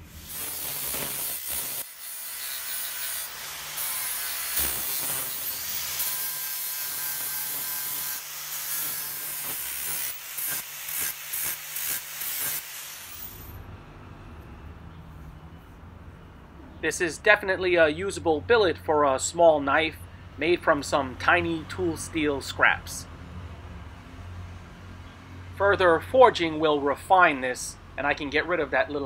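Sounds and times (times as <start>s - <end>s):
angle grinder grinding steel: 0.0s - 13.6s.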